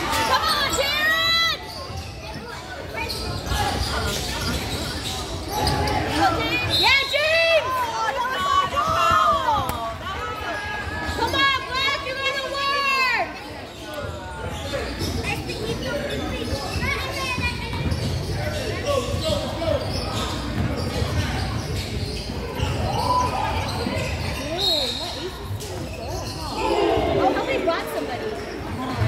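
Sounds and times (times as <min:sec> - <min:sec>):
voices in gymnasium: 0:00.0 - 0:29.0.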